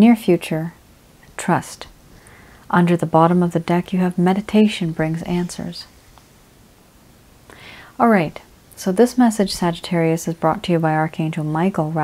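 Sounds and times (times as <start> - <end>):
woman's soft in-breath: 2.1 - 2.7, 7.5 - 8.0.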